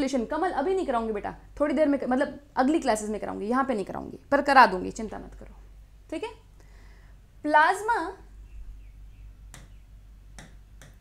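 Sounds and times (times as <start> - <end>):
low steady hum: 0.0 - 11.0
pen tapping glass screen: 9.5 - 9.8, 10.4 - 11.0.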